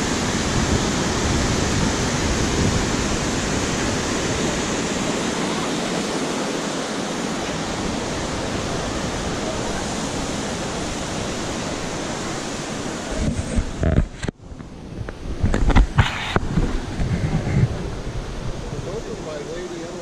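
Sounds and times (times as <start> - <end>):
river water pouring over weir: 0.0 - 14.9, 15.8 - 20.0.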